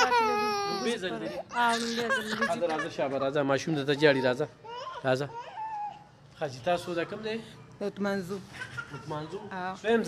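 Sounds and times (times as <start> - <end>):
high-pitched crying voice: 0.0 - 3.0.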